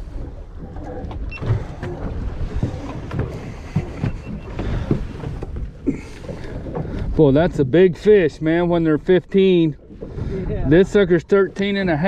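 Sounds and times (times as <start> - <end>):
water lapping at boat hull: 0.0 - 12.0
wind buffeting microphone: 0.0 - 12.0.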